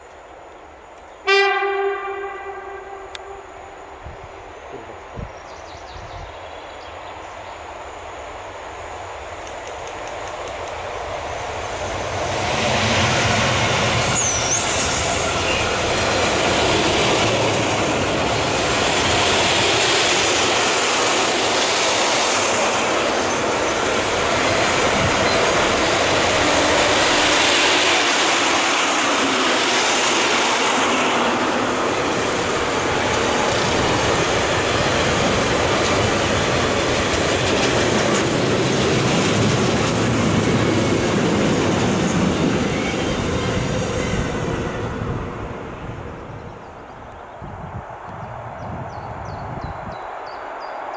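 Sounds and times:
freight train wheels rushing on rail: 0:00.0 - 0:50.9
clickety-clack over rail joints: 0:09.4 - 0:12.4, 0:32.1 - 0:43.6.

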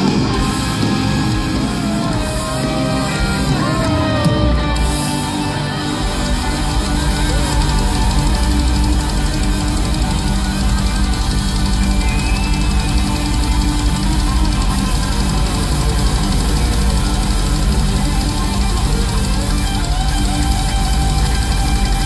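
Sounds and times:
heavy metal band playing live: 0:00.0 - 0:22.0.

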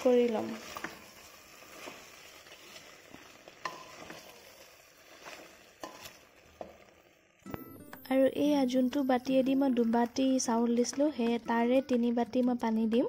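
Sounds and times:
spatula scraping rice: 0:00.2 - 0:06.3.

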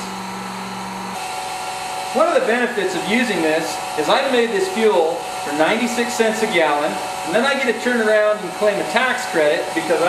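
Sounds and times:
electric fuel pump humming: 0:00.0 - 0:10.0.

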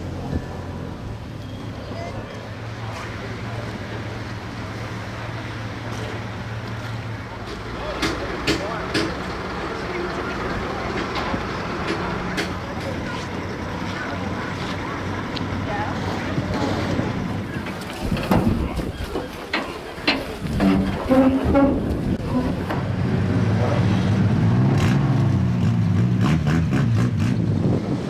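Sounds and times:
indistinct voices: 0:01.6 - 0:24.1
wind on microphone: 0:20.4 - 0:22.7, 0:27.0 - 0:28.0.

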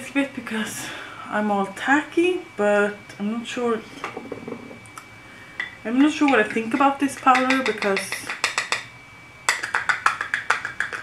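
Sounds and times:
makeup containers clicking on desk: 0:07.2 - 0:08.9, 0:09.5 - 0:11.0.

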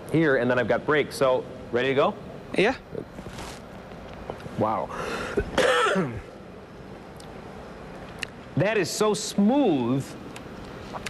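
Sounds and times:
man's cough-like exclamation: 0:05.2 - 0:06.3.

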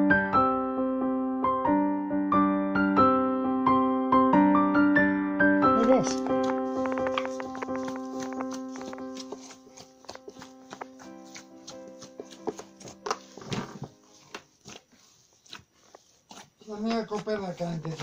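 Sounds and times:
piano background music: 0:00.0 - 0:14.7
hands punching bread dough: 0:05.8 - 0:18.0.

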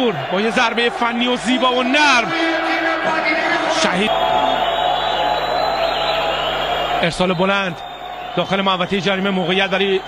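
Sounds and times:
stadium crowd din: 0:00.0 - 0:10.0.

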